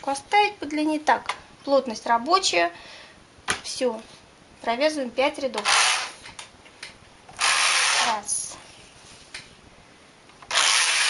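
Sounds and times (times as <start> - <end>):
knitting machine carriage sliding: 5.6 - 6.2, 7.4 - 8.2, 10.5 - 11.0.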